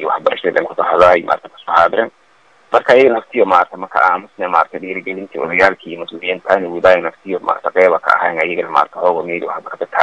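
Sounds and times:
person talking: 0:00.0 - 0:02.1, 0:02.8 - 0:10.0.

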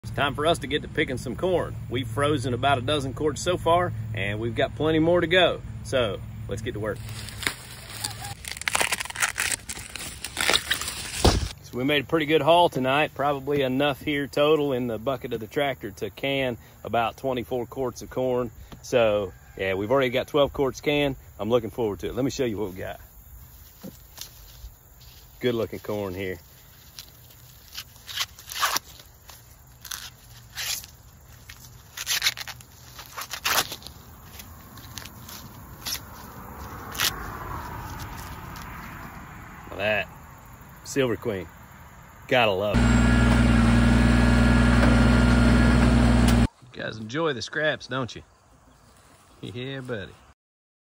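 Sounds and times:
corn stalks crackling and snapping: 0:07.0 - 0:11.6, 0:23.6 - 0:39.1.

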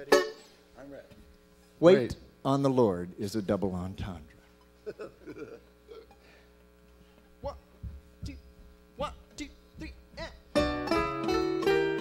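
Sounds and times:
electrical mains hum: 0:00.0 - 0:12.0
short laughs: 0:04.8 - 0:06.2.

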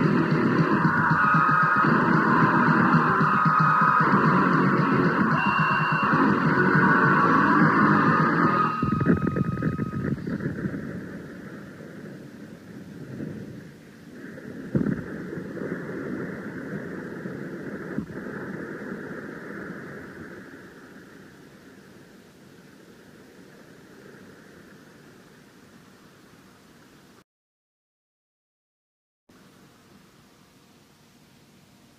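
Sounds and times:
band noise ringing out: 0:00.0 - 0:13.0
tape hiss: 0:00.0 - 0:27.2, 0:29.3 - 0:31.9.

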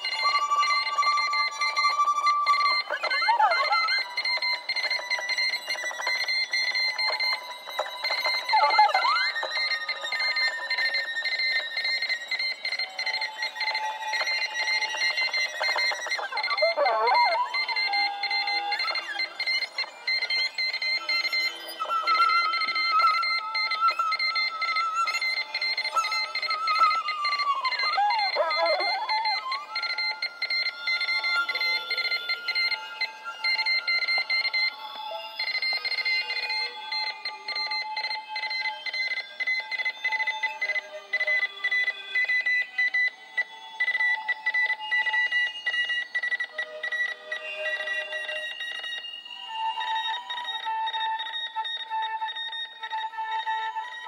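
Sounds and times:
steady high electronic tones: 0:27.9 - 0:29.5.

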